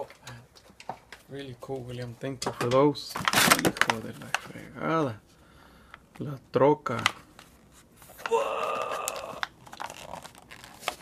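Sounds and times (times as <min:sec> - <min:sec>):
cardboard packaging tearing: 0:03.2 - 0:04.1, 0:08.1 - 0:11.0.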